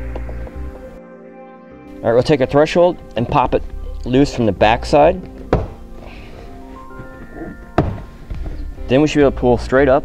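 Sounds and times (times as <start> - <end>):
background music of held tones: 0.0 - 10.0.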